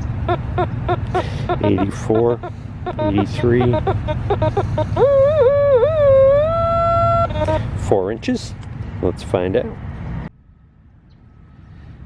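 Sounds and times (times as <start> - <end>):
metal detector warbling tone: 0.2 - 7.6
metal detector beeps: 0.3 - 6.3.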